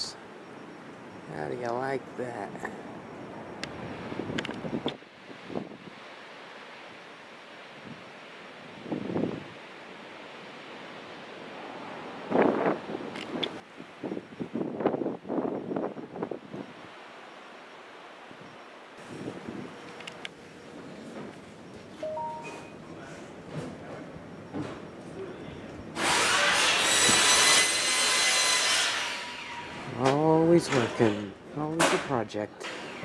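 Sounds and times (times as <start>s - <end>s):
wind on microphone: 3.7s - 6.0s, 8.8s - 9.6s, 12.1s - 16.9s, 18.3s - 19.8s.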